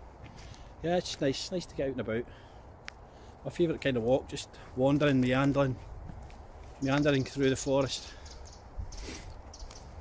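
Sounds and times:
footsteps on forest floor: 0:00.0 - 0:01.6, 0:02.8 - 0:10.0
distant motorway traffic hum: 0:00.0 - 0:10.0.

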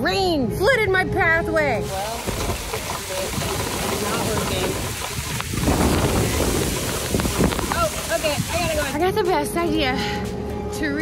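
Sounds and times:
wind rumbling on microphone: 0:01.7 - 0:09.7
rain hiss: 0:01.8 - 0:09.3.

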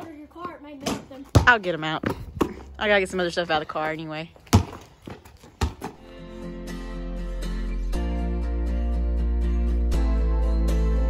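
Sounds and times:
basketball bouncing on concrete: 0:00.0 - 0:06.1
background music with bass: 0:06.0 - 0:11.0.

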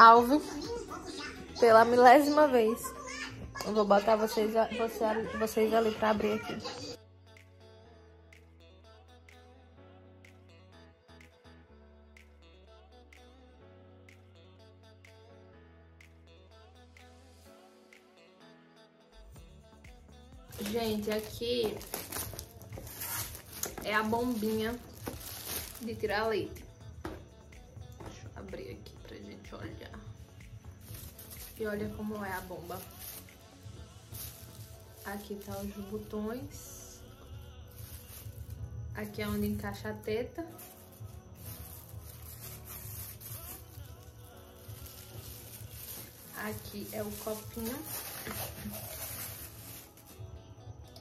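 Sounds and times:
plastic parts rustling: 0:20.5 - 0:25.9, 0:30.8 - 0:33.3, 0:34.1 - 0:36.0, 0:37.7 - 0:38.6, 0:40.6 - 0:50.1
plastic film crinkling and tearing: 0:20.5 - 0:26.1, 0:30.8 - 0:36.6, 0:37.7 - 0:38.7, 0:40.5 - 0:50.2.

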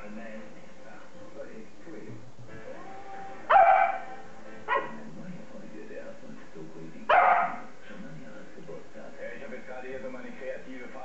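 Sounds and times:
young dog barking: 0:03.5 - 0:05.0, 0:07.1 - 0:07.7.

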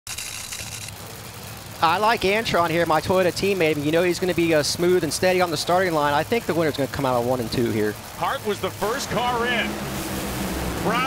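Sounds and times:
low engine rumble: 0:00.2 - 0:11.0
man speaking: 0:01.8 - 0:09.8, 0:10.8 - 0:11.0.

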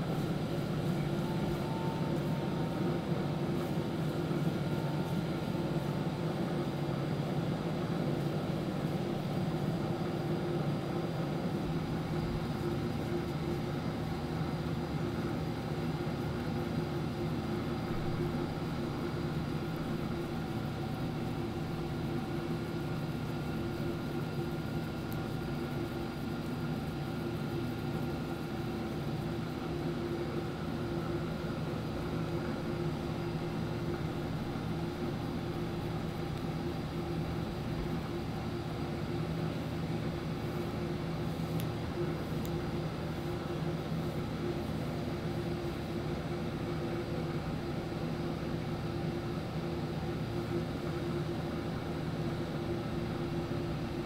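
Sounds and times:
machine hum with held tones: 0:00.0 - 0:54.0.

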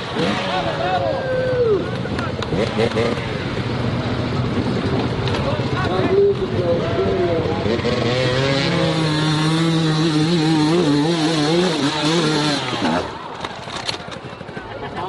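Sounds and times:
spectators' voices: 0:00.0 - 0:09.0, 0:11.7 - 0:15.0
dirt bike engines revving: 0:00.0 - 0:15.0.

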